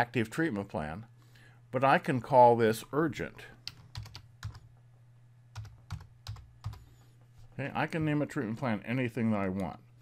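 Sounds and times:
faint low hum: 0:00.0 - 0:10.0
keyboard typing: 0:03.6 - 0:04.8, 0:05.5 - 0:07.0.

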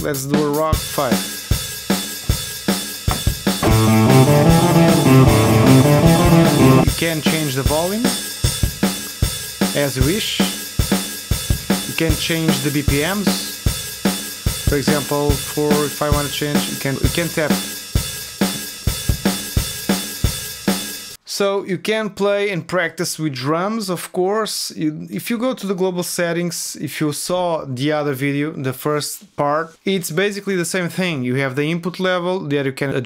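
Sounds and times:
drum machine rock beat: 0:01.9 - 0:07.1, 0:18.5 - 0:19.8
electric guitar chords: 0:03.6 - 0:06.9.

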